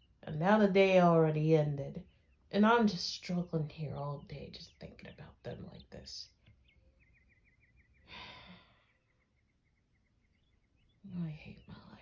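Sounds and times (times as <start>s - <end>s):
woman sighing: 8.1s - 8.9s.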